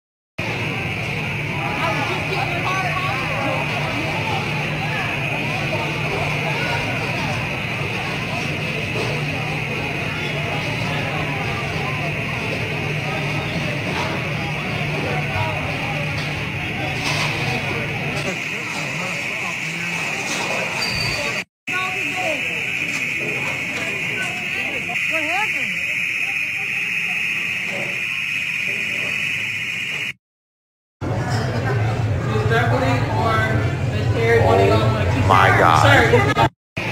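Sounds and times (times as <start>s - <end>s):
people talking indistinctly: 21.7s - 27.3s, 32.4s - 36.5s
steady high-pitched tone: 21.7s - 30.2s.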